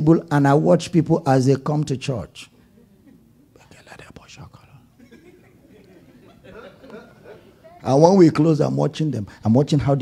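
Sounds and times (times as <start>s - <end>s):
faint whispering voices: 2.7s - 5.0s.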